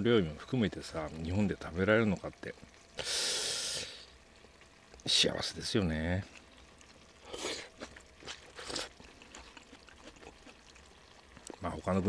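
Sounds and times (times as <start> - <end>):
slurping noodles: 7.2 - 10.8.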